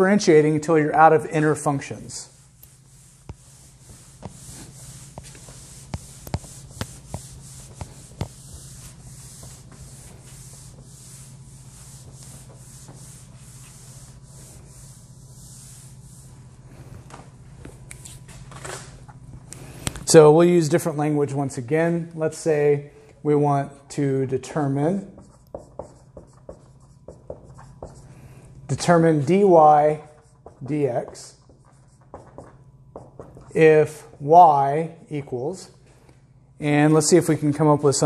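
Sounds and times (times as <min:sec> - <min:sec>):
person speaking: 0:00.0 - 0:02.4
cloth wiping a whiteboard: 0:00.0 - 0:18.2, 0:24.4 - 0:35.7
steady low hum: 0:00.0 - 0:38.0.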